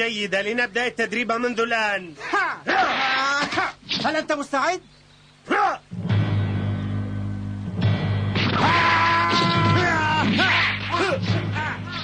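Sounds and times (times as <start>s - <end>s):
cartoon character fighting yell: 2.7s - 3.8s, 8.6s - 12.0s.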